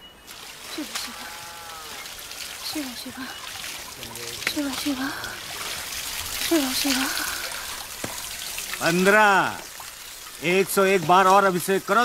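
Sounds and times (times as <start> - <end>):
water splashing and trickling: 0.0 - 12.0.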